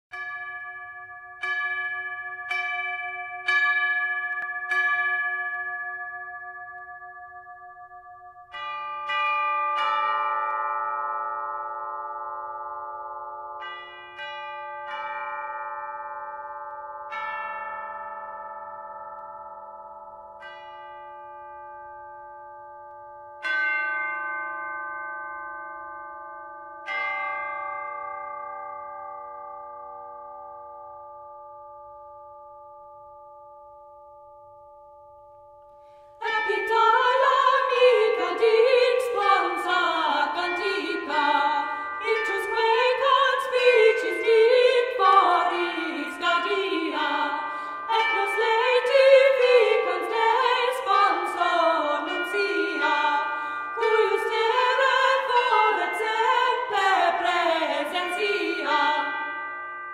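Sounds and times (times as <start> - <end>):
tuned bells ringing: 0.1 - 59.9.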